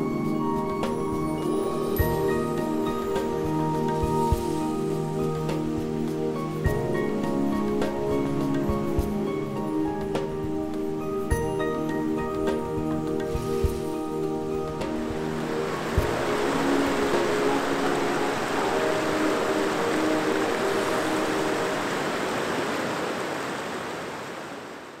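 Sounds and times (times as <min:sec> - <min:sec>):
soft background music: 0:00.0 - 0:22.4
river rushing over rocks: 0:12.9 - 0:25.0.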